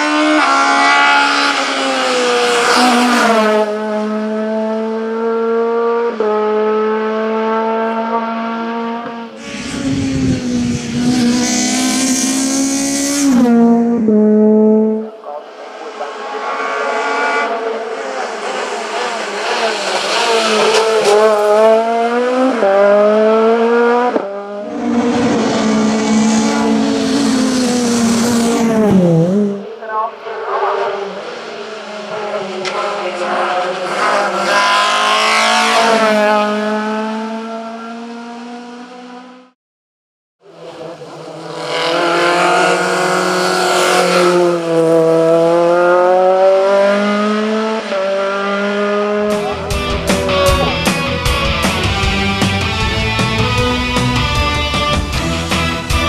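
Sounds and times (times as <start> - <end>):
race car accelerating hard: 0.0 - 39.6, 40.4 - 56.0.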